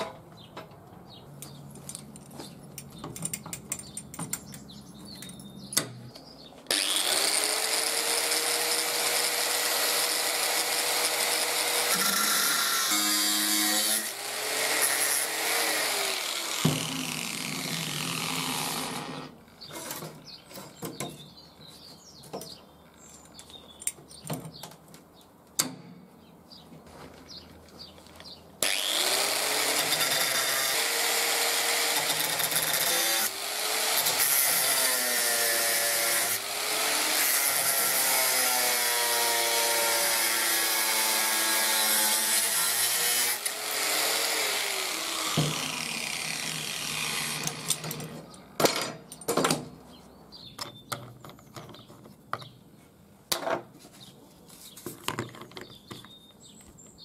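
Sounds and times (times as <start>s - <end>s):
angle grinder grinding metal: 6.7s - 19.3s, 28.6s - 48.2s.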